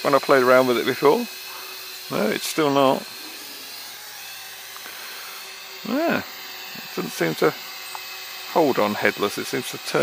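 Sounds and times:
quadcopter motors whining: 0.0 - 10.0
person speaking: 2.0 - 3.6, 5.8 - 7.6.

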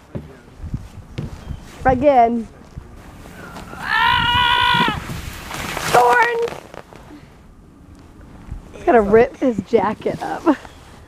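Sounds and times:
child yelling: 3.8 - 5.0.

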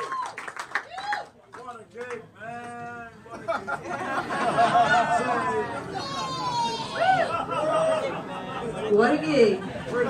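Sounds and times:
audience whooping and calling: 0.0 - 1.4, 4.5 - 8.4.

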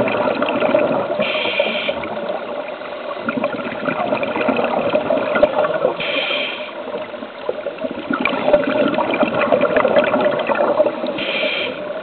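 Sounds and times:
underwater air bubbling: 0.0 - 12.0
regulator hiss: 1.2 - 2.1, 6.0 - 6.9, 11.1 - 12.0.

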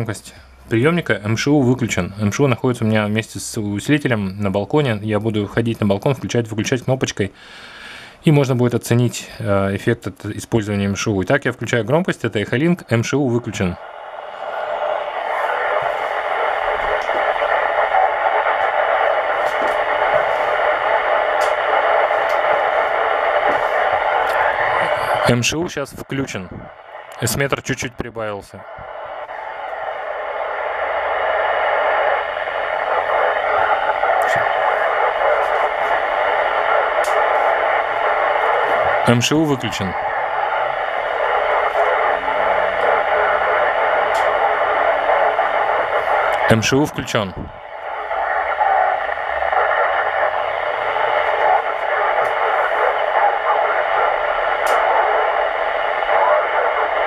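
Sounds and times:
radio speaker hissing: 0.0 - 57.0.

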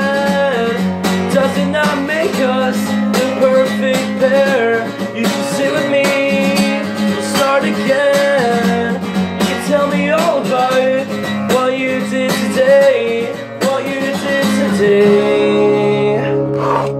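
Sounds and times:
acoustic guitar strumming: 0.0 - 16.9
man singing: 0.0 - 16.9.

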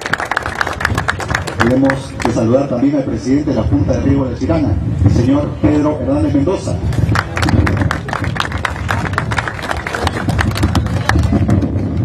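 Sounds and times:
audience applauding: 0.0 - 2.4, 7.1 - 11.6.

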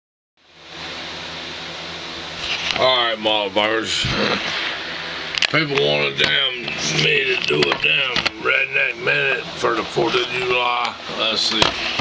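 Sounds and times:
faint low hum: 0.5 - 12.0.

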